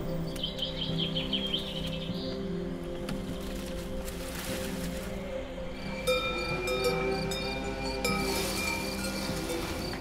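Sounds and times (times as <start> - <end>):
sustained music bed: 0.0 - 10.0.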